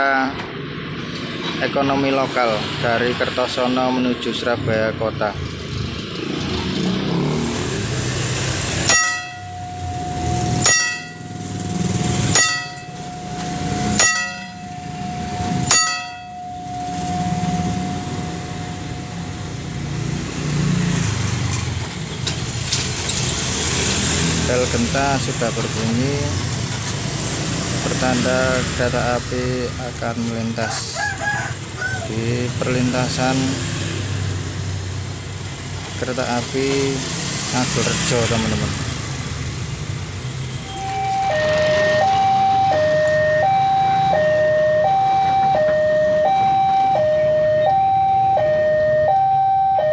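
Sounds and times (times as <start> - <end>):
passing cars and motorcycles: 0.0 - 49.9
car engine running: 8.2 - 20.8
level crossing bell ringing: 8.9 - 20.1, 40.2 - 49.9.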